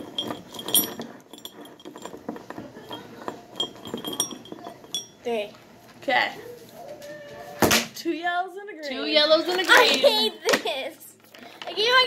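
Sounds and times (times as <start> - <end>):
crayons rattling in ceramic mug: 0.0 - 5.5.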